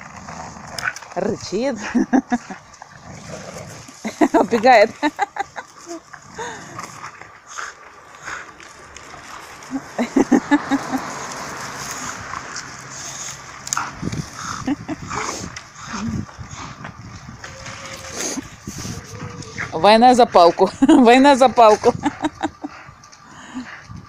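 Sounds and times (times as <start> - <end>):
dog growling: 0.0 - 1.2, 1.8 - 5.0, 5.8 - 8.6, 13.0 - 16.9, 17.5 - 19.9
leafy branch rustling: 0.0 - 16.5
twigs cracking: 5.6 - 10.0.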